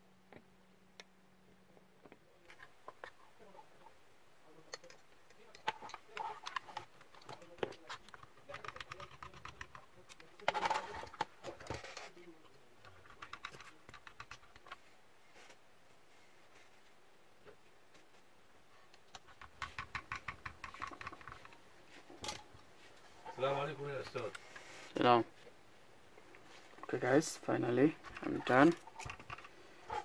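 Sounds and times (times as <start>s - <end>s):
plastic and metal parts clicking: 4.7s - 12.1s, 28.0s - 30.0s.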